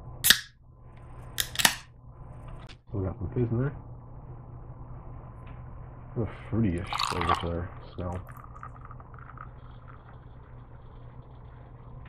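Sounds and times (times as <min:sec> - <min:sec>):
can pull tab cracking: 0:00.2 - 0:00.5, 0:01.4 - 0:01.8
carbonation fizzing hiss: 0:06.6 - 0:12.0.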